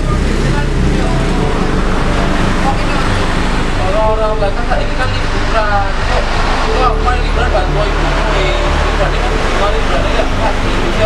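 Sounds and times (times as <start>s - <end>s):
low background rumble: 0.0s - 11.0s
young people talking: 0.0s - 11.0s.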